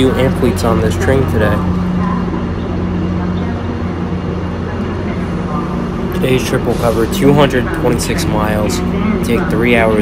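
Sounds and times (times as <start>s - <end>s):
train equipment humming: 0.0s - 10.0s.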